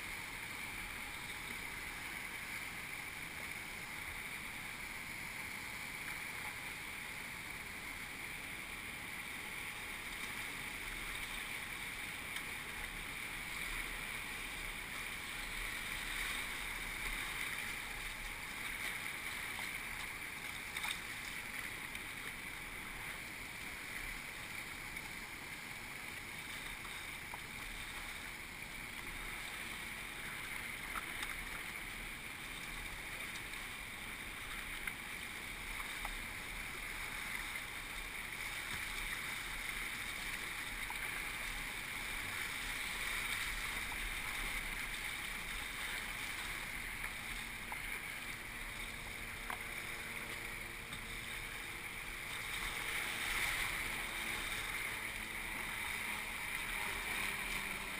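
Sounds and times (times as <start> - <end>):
river rapids rushing: 9.3 - 57.9.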